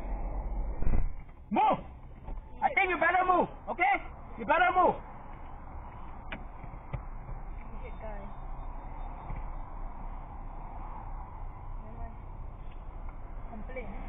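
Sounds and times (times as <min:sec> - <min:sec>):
passing cars traffic noise: 0:00.0 - 0:14.0.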